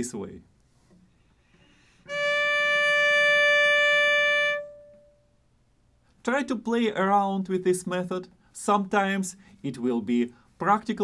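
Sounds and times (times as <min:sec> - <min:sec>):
cello bowed long note: 0:01.5 - 0:05.3.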